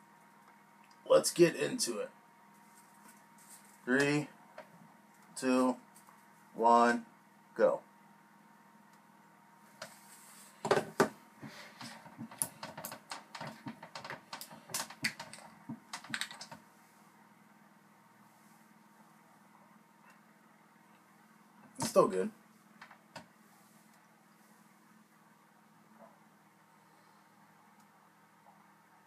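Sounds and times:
plastic clicks and crackles: 11.8s - 16.6s.

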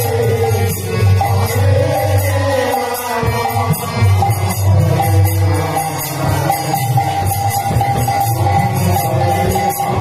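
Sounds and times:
hand cymbals clashing: 0.0s - 10.0s
harmonium tone: 0.0s - 10.0s
men chanting: 0.0s - 10.0s.

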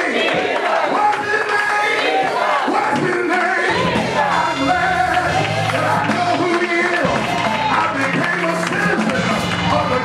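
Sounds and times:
congregation shouting together: 0.0s - 10.0s.

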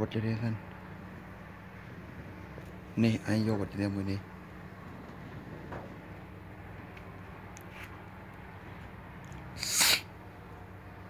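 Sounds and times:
steady low hum: 0.0s - 11.0s
sneeze-like breath burst: 9.6s - 10.1s.

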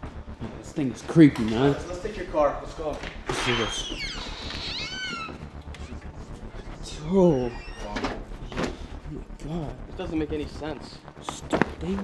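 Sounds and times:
high-pitched squeal: 1.7s - 8.8s.

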